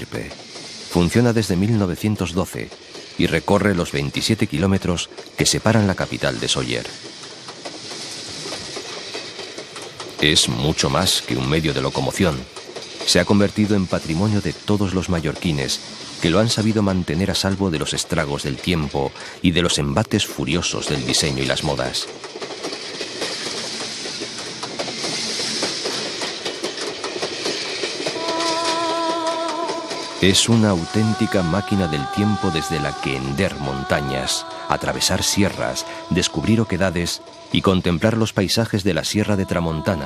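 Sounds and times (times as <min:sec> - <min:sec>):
train rolling on rails: 0:00.0 - 0:40.0
wheel clicks: 0:20.6 - 0:34.2
carriage clicks and rattles: 0:22.0 - 0:28.2.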